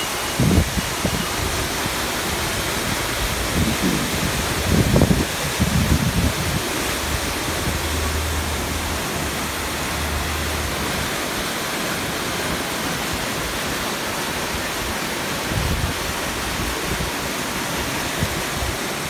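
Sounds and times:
floodwater rushing: 0.0 - 19.0
heavy rain falling: 0.0 - 19.0.

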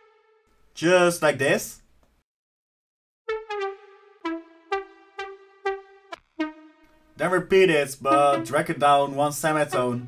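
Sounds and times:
bright synthesizer lead notes: 3.3 - 7.2, 8.1 - 8.8.

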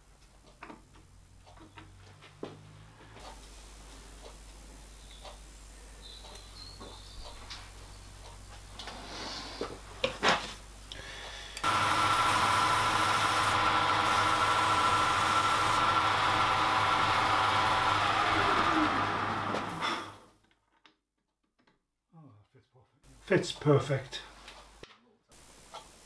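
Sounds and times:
high whine: 11.6 - 20.2
metal lathe humming: 11.6 - 20.2.

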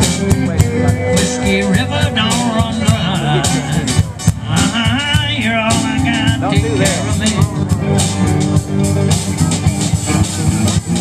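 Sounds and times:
bass guitar: 0.0 - 11.0
drum kit steady beat: 0.0 - 11.0
electric guitar: 0.0 - 11.0
live country band: 0.0 - 11.0.

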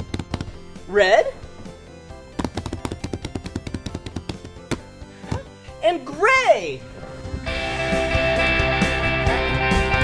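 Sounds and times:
background music: 0.0 - 10.0
hands drumming on foam roll: 2.4 - 5.4.

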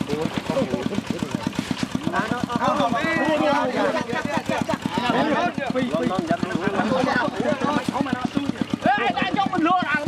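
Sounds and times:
small engine puttering: 0.0 - 10.0
men calling out: 2.1 - 10.0.

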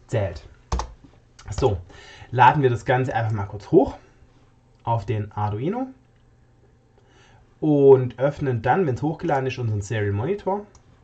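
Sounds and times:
keyboard and mouse clicks: 0.7 - 1.6.

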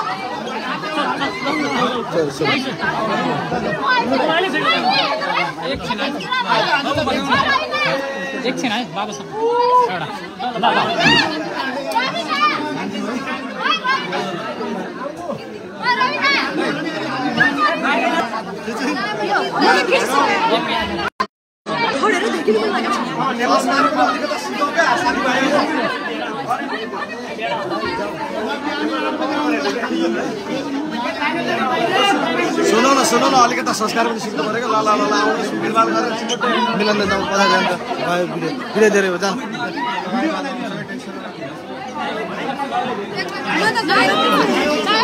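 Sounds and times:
crowd chatter: 0.0 - 45.0.

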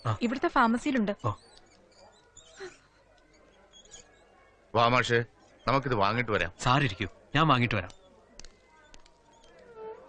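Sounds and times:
man speaking: 4.8 - 7.9.

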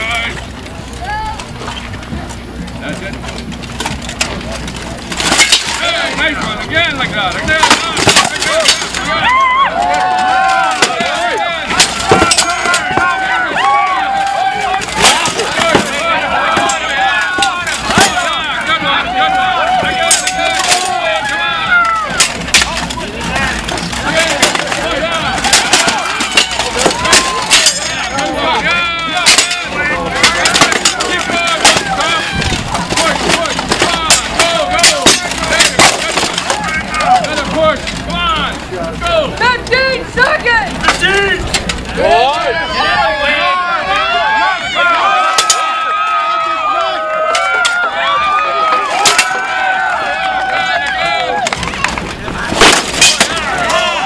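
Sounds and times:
crowd voices: 0.0 - 54.0
swords striking armour and shields: 7.4 - 9.1, 10.7 - 13.2, 14.9 - 18.4, 24.0 - 28.1, 29.2 - 36.7, 52.5 - 53.9.

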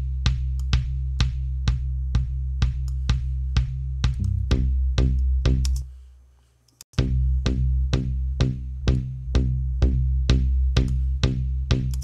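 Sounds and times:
electronic kick drum loop: 0.0 - 5.8, 7.0 - 12.0
low bass tone: 3.6 - 5.8, 7.0 - 12.0.

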